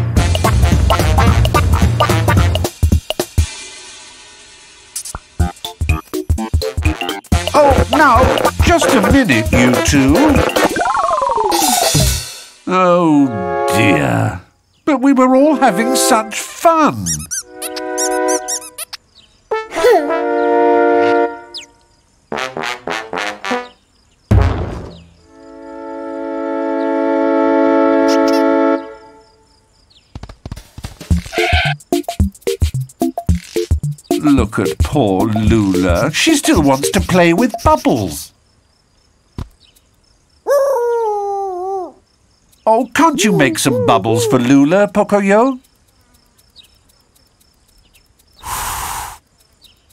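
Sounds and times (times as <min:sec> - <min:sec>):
high squeaky chirps: 0:05.4 - 0:12.1, 0:16.4 - 0:19.1, 0:21.4 - 0:21.9, 0:31.1 - 0:38.2, 0:40.5 - 0:49.0
cartoon dog howling: 0:40.5 - 0:42.0, 0:43.0 - 0:44.8
swooping tone: 0:43.1 - 0:44.6
cartoon music chord: 0:43.2 - 0:44.5.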